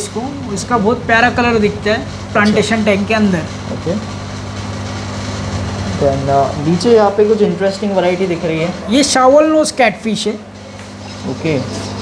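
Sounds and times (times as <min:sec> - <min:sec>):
low mains hum: 0:00.0 - 0:12.0.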